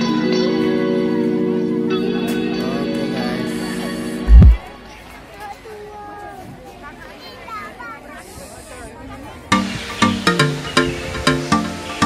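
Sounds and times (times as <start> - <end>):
faint voices talking: 0.0 - 12.0
music with strong beat: 4.3 - 4.6.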